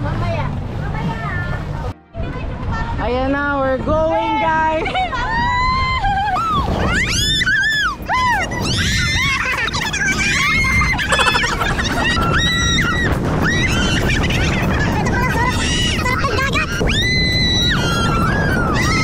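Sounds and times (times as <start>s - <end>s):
rush of wind and spray: 1.8s - 19.0s
people screaming and shrieking: 5.2s - 19.0s.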